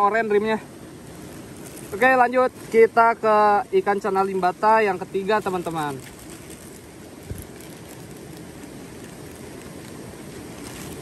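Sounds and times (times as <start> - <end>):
plastic bag rustling: 1.2 - 3.2, 5.0 - 11.0.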